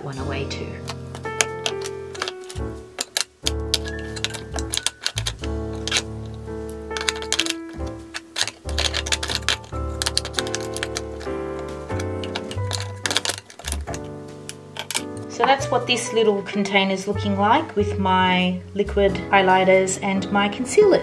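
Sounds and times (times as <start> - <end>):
plastic makeup items clacking: 0.8 - 15.7.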